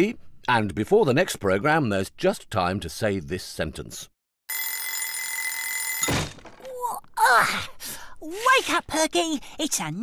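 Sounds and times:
alarm clock bells ringing: 4.5 - 6.1
thump: 6.0 - 6.6.

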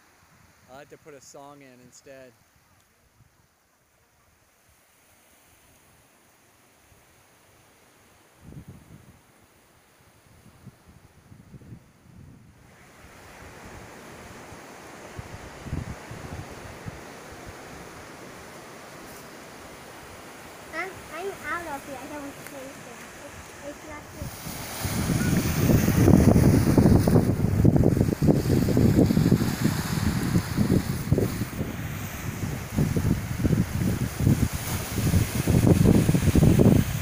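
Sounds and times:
small waves washing on sand: 4.4 - 8.4, 12.5 - 37.0
wind buffeting microphone: 10.3 - 14.4, 15.1 - 17.8, 20.2 - 37.0.

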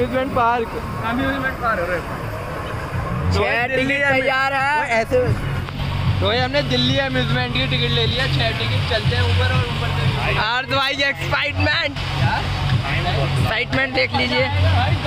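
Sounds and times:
voices: 0.0 - 15.0.

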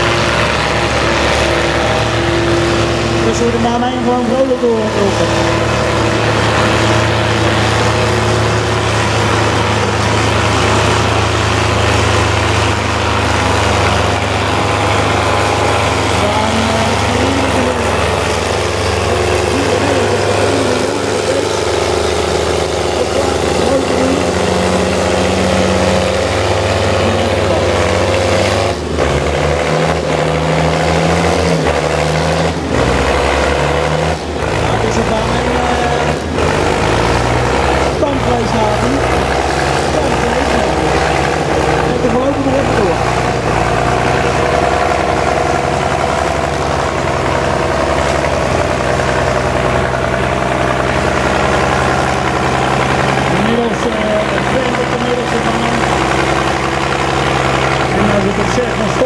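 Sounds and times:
tractor engine under load: 0.0 - 59.0.

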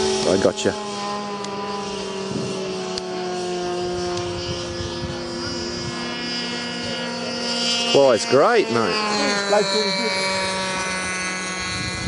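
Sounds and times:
electric ducted fan whining: 0.0 - 12.0.

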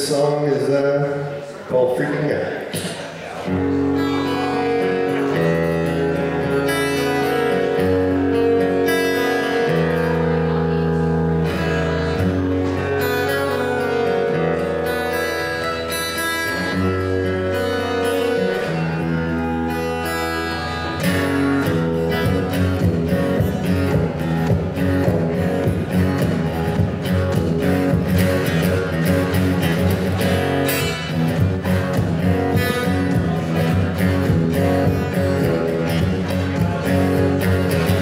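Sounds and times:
acoustic guitar chords: 0.0 - 38.0.

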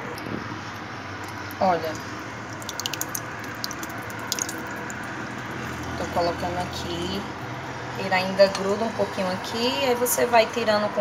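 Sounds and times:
thick liquid pouring with splats: 2.4 - 5.9.

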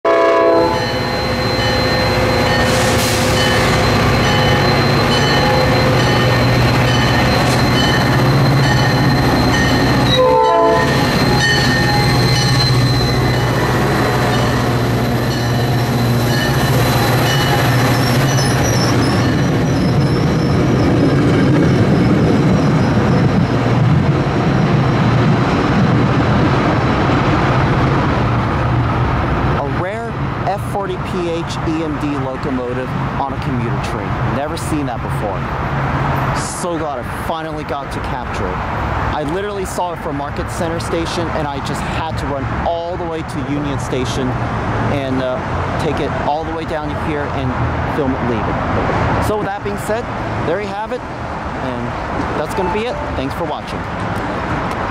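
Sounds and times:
train horn blast: 0.1 - 1.1, 10.1 - 11.1
diesel locomotive engine running: 0.1 - 33.2
train wheels rumbling over rails: 0.5 - 33.6.

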